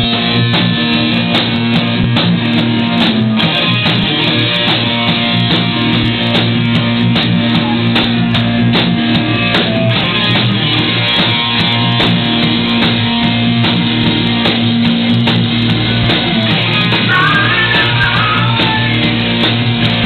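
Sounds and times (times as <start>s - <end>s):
drum kit beat: 0.0s - 20.0s
electric guitars: 0.0s - 20.0s.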